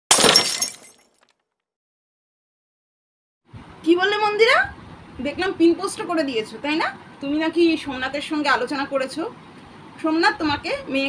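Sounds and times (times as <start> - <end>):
shattering crash: 0.1 - 1.2.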